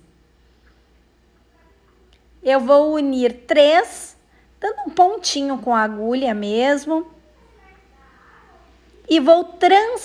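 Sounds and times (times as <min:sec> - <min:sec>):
faint background noise: 0:00.0 - 0:10.0
woman narrating: 0:02.4 - 0:07.1, 0:09.0 - 0:10.0.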